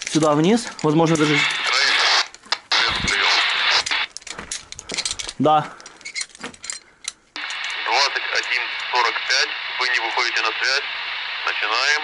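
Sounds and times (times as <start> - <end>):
radio static hiss: 1.0 - 4.1, 7.4 - 12.0.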